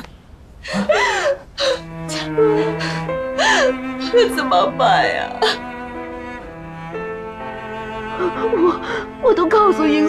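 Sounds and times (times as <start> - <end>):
woman crying and sobbing: 0.6 - 5.8, 8.1 - 10.0
slow sad background music: 0.7 - 10.0.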